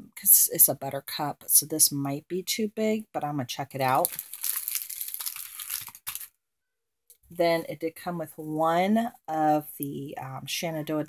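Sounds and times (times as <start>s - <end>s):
plastic packaging crinkling: 3.8s - 6.4s.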